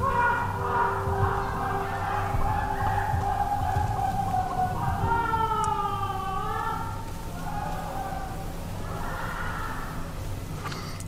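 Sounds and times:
distant wails: 0.0s - 10.6s
steady low hum: 0.0s - 11.0s.

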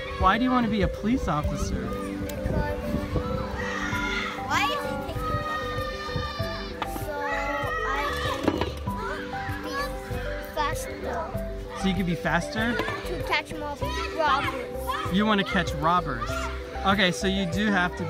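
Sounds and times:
background music: 0.0s - 18.0s
children calling and shouting: 0.0s - 18.0s.

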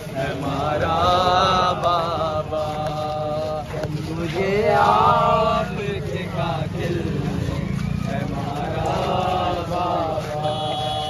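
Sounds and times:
crowd rumble: 0.0s - 11.0s
men chanting a lament: 0.0s - 11.0s.

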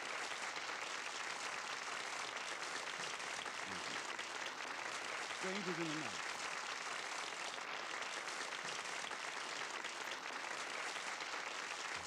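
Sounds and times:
audience applauding: 0.0s - 12.0s.

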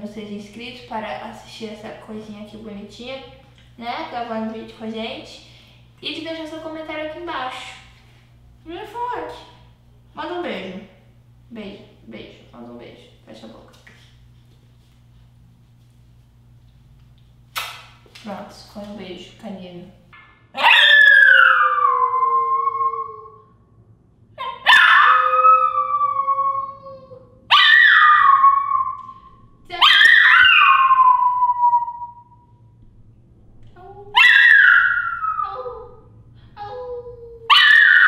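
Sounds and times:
dog yipping: 20.6s - 22.2s, 24.4s - 26.0s, 27.5s - 29.2s, 29.8s - 32.2s, 34.1s - 35.9s, 37.5s - 38.0s
dog howling: 20.6s - 23.5s, 24.4s - 32.4s, 34.1s - 36.0s, 37.5s - 38.0s.

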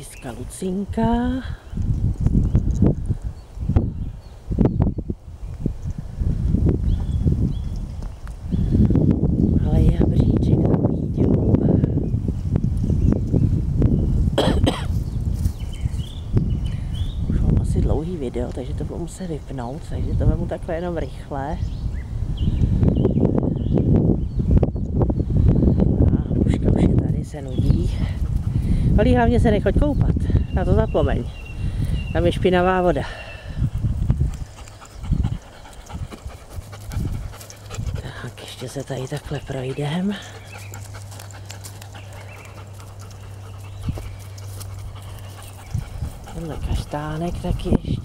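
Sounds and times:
wind buffeting microphone: 0.0s - 48.0s
dog panting: 28.1s - 28.8s, 33.7s - 48.0s.

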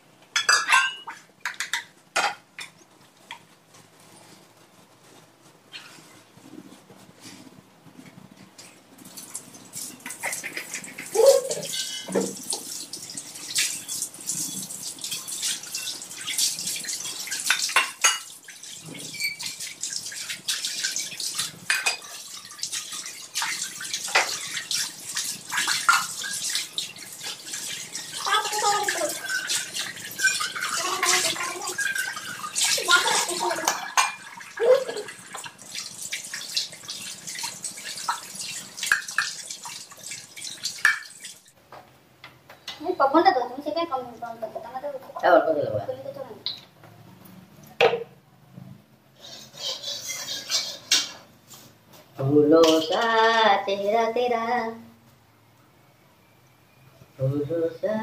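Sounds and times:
utensils and dishes clinking: 0.4s - 2.8s, 9.8s - 35.6s, 38.0s - 41.5s, 49.4s - 51.3s, 52.6s - 53.2s
water running from tap: 9.0s - 41.6s.

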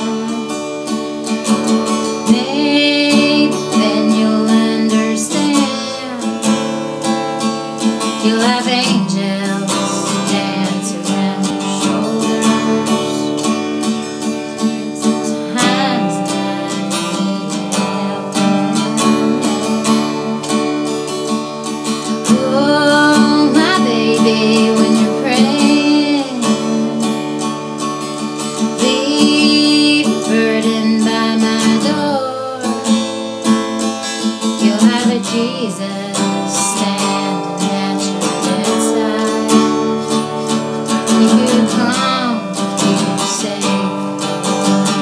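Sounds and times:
acoustic guitar strumming chords: 0.0s - 45.0s
woman singing: 0.0s - 45.0s.

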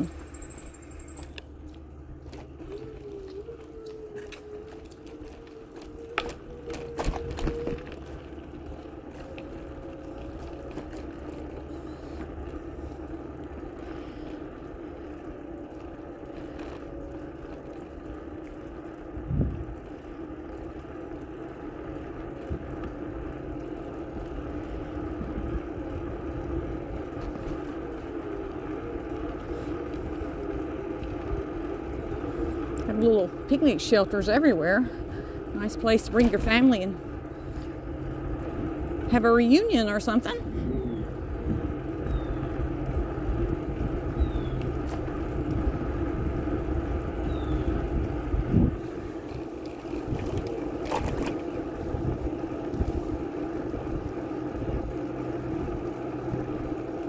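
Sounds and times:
bicycle rattles: 0.0s - 57.0s
bicycle rolling over pavement: 0.0s - 57.0s.

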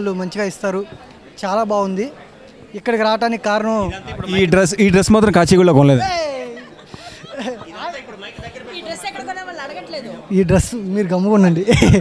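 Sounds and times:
people chatting: 2.8s - 12.0s.

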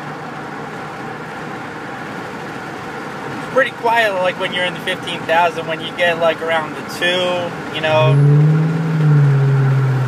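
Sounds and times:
car exhaust low note: 7.4s - 10.0s.

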